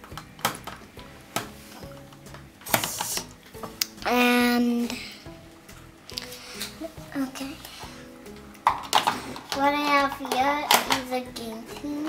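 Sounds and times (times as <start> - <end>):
faint background music: 0.0 - 12.0
plastic containers clattering: 8.4 - 12.0.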